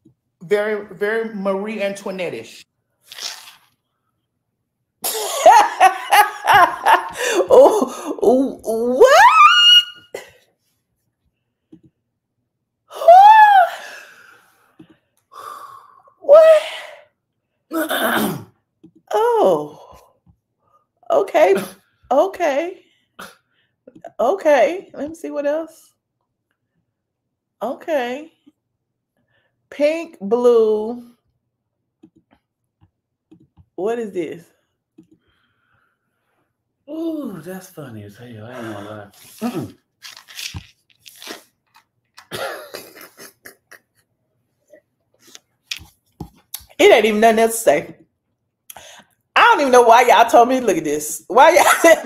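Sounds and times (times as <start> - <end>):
woman laughing and gasping: 5.1 - 8.2.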